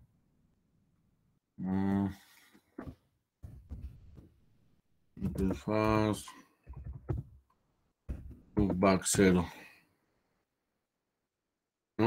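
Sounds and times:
man humming mmm: 1.6 - 2.2.

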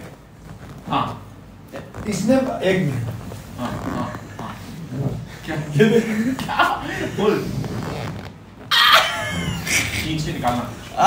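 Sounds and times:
high-pitched vocal squeal: 8.7 - 9.7.

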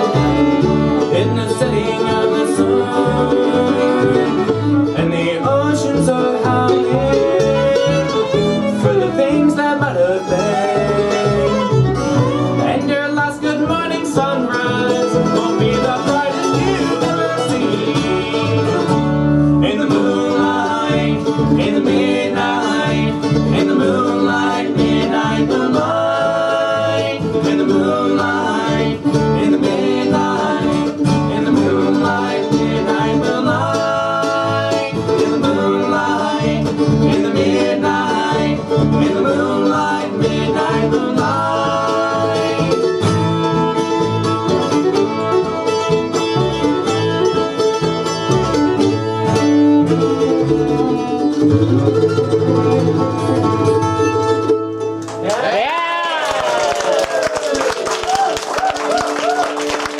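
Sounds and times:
fiddle: 0.0 - 55.2
acoustic guitar: 0.0 - 59.9
mandolin: 0.0 - 59.9
upright bass: 0.0 - 59.9.

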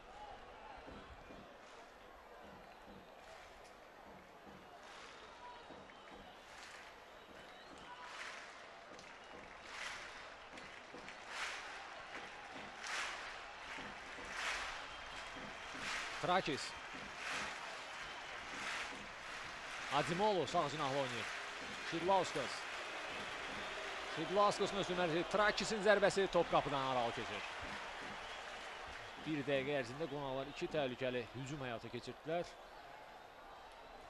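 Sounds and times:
faint stadium crowd noise: 0.0 - 34.0.

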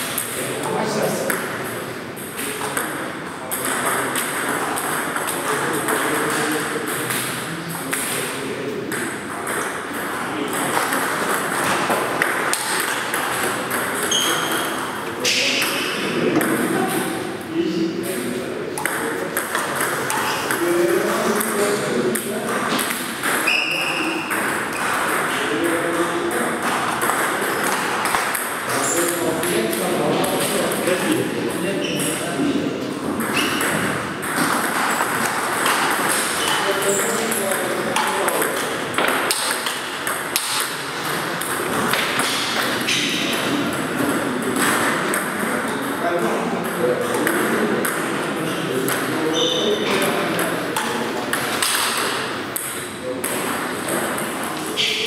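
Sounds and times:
table tennis balls clicking: 0.1 - 17.2, 18.1 - 32.2, 33.0 - 46.0, 46.6 - 54.9.

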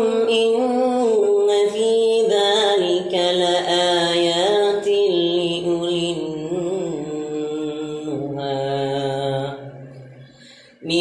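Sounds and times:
man reciting in melodic chant: 0.0 - 11.0.

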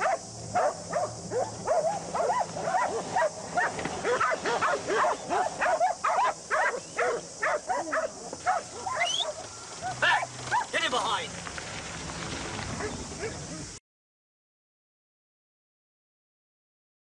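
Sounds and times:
dog barking rapidly: 0.0 - 10.8, 12.8 - 13.6.

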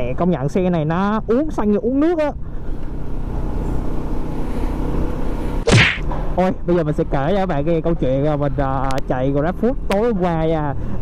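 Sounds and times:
loud rushing whoosh: 5.6 - 6.1.

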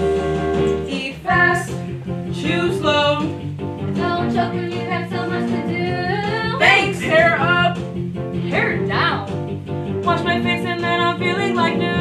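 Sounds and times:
instrumental accompaniment: 0.0 - 12.0
girls singing: 4.0 - 7.5.

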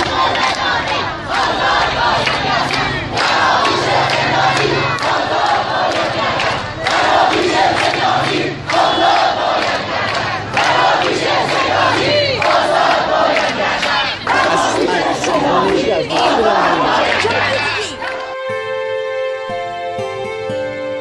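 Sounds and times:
crowd shouting slogans: 0.0 - 18.4.

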